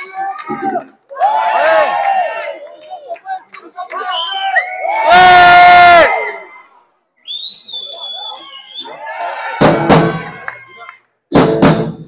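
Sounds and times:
high whistle: 4.0s - 4.9s, 7.2s - 9.0s
people shouting: 4.4s - 6.6s, 8.2s - 11.0s.

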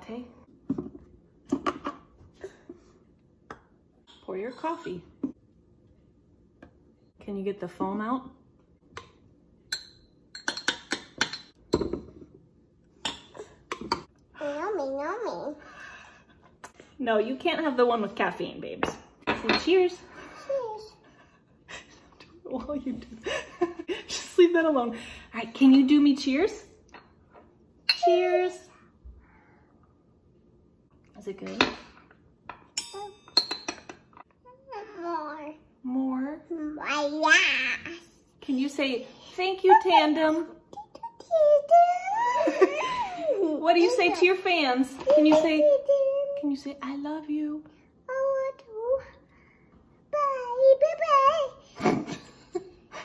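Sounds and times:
metal spoon clinking: 9.7s - 11.9s, 32.7s - 33.9s
toddler's voice: 20.4s - 21.0s, 36.5s - 38.2s, 40.7s - 42.6s, 45.0s - 46.4s, 48.0s - 49.2s, 50.1s - 51.7s
metal spoon clinking glass cup: 32.8s - 33.9s.

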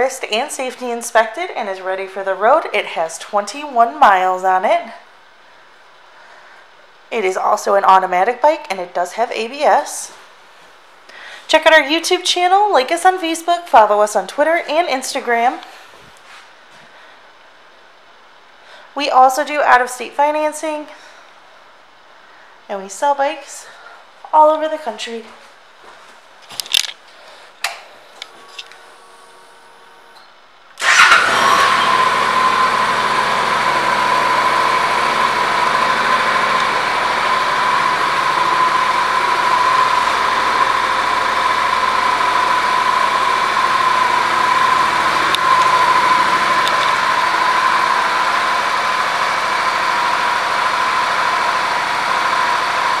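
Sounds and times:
motorcycle engine starting and idling: 27.7s - 53.0s.

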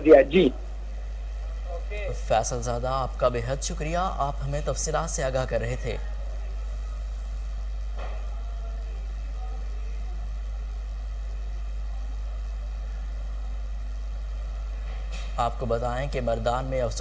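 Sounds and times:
steady low hum: 0.0s - 17.0s.

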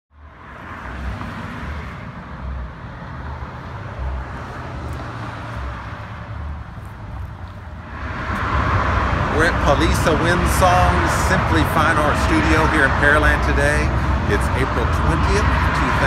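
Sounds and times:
low traffic rumble: 0.1s - 16.0s
tyre and road hiss: 4.3s - 16.0s.

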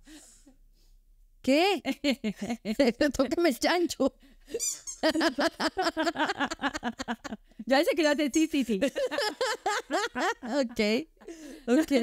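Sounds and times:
woman laughing: 4.5s - 7.4s, 8.8s - 12.0s
toy squeak: 4.6s - 5.1s.

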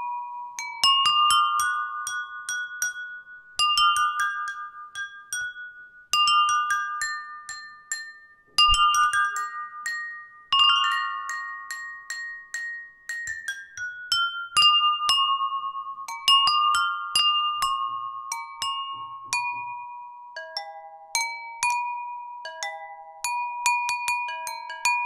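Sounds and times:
water-tuned bowls struck melody: 0.0s - 25.0s.

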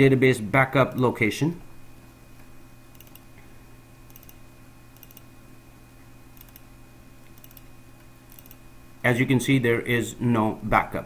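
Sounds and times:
low electrical hum: 0.0s - 11.0s
computer mouse clicks: 2.9s - 3.3s, 4.1s - 4.4s, 5.0s - 5.3s, 6.4s - 6.7s, 7.3s - 7.7s, 8.3s - 8.6s.

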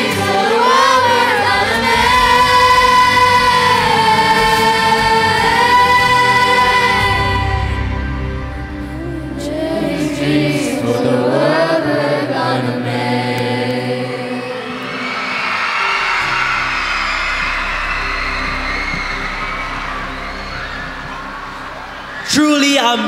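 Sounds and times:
children's choir singing: 0.0s - 8.2s, 8.9s - 22.6s
backing track music: 0.0s - 23.0s
audience applauding and cheering: 14.3s - 23.0s.

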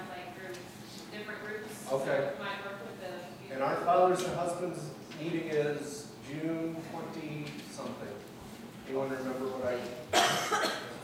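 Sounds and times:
person coughing: 10.1s - 11.0s.

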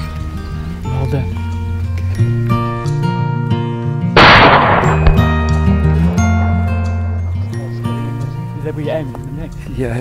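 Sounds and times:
background music: 0.0s - 10.0s
rifle shot with echo: 4.2s - 5.6s.

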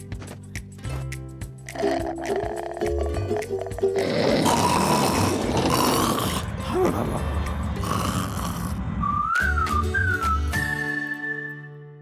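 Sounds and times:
rasping cartoon snore: 1.7s - 8.9s.

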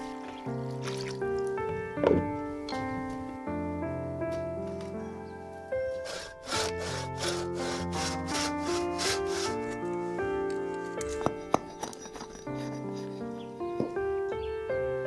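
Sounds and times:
hand saw cutting wood: 6.0s - 9.8s.

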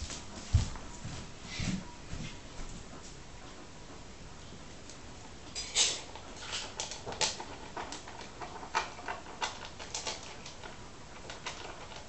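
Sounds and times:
cat crunching dry biscuits: 6.1s - 12.0s.

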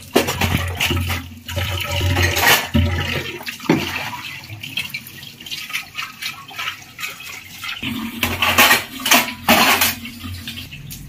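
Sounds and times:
metal pots and dishes clattering: 0.0s - 11.0s.

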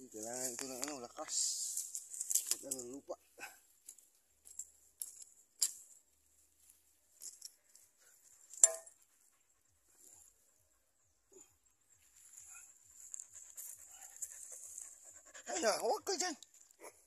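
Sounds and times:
dog panting: 7.9s - 16.3s.

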